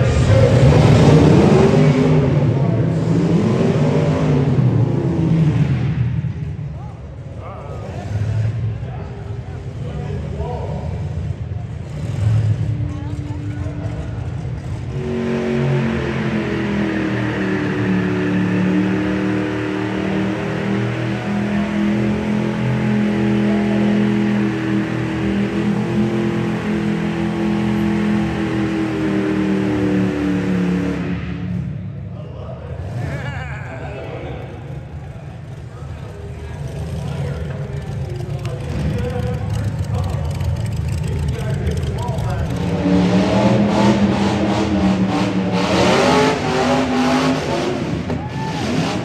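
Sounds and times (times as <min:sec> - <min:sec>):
car engine running: 0:00.0 - 0:32.1, 0:34.1 - 0:49.0.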